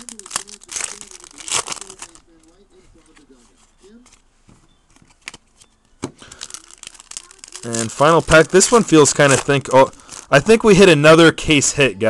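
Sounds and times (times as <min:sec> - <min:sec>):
foil wrapper crinkling and tearing: 0:00.0 - 0:03.3, 0:04.9 - 0:10.9.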